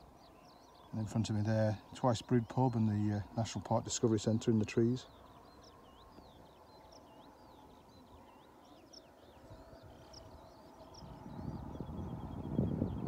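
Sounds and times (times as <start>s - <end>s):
low background noise: 0.0s - 13.0s
small songbird twittering: 0.0s - 13.0s.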